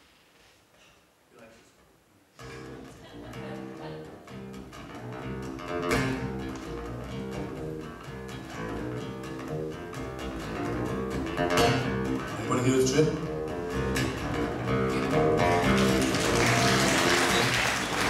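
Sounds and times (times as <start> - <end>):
acoustic guitar picking: 2.4 - 17.5.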